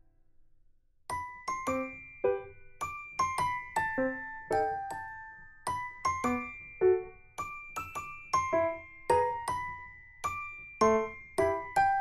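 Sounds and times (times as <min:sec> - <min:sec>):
bell-toned keyboard melody: 0:01.1 - 0:12.0.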